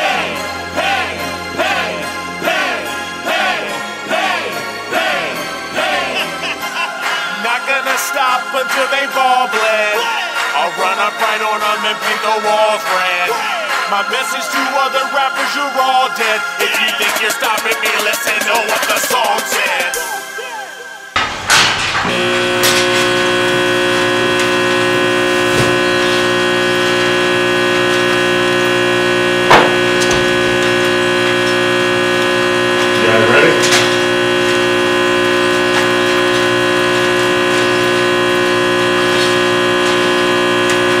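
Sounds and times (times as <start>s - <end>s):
sustained synthesizer drone: 0.0s - 7.9s, 21.5s - 41.0s
sharp knock: 29.5s - 30.2s.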